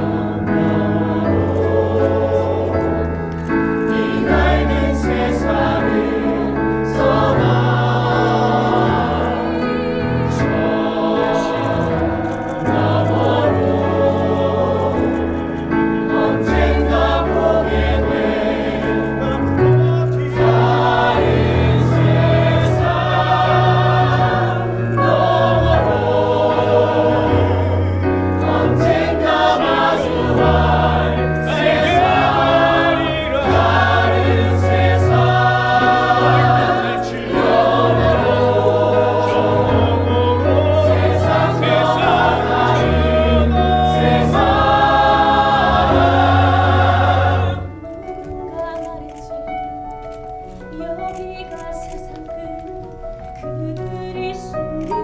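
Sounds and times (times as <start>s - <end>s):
choir singing in chorus: 0.0s - 48.1s
instrumental accompaniment: 0.0s - 55.0s.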